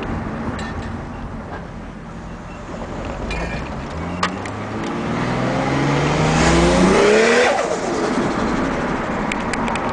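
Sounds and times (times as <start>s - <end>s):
car engine revving: 3.6s - 9.6s.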